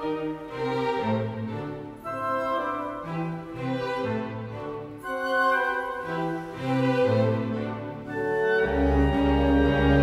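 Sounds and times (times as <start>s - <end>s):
classical bowed strings: 0.0s - 10.0s.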